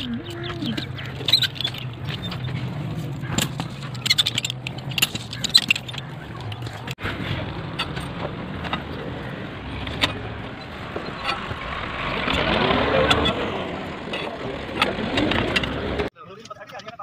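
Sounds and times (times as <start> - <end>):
motor vehicle passing: 0.0 - 16.1
outdoor background noise: 0.0 - 17.0.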